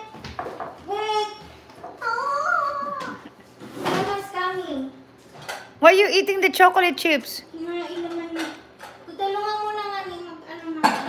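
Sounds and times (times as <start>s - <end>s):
girl squealing: 2.0s - 3.3s
girl vocalizing: 2.0s - 3.3s.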